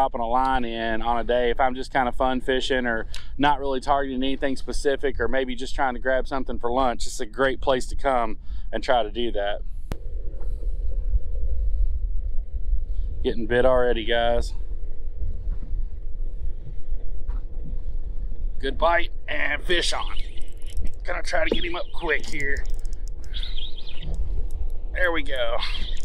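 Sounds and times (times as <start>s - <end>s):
wind buffeting microphone: 0.0s - 26.0s
high warbling chirp: 19.5s - 24.4s, 25.0s - 26.0s.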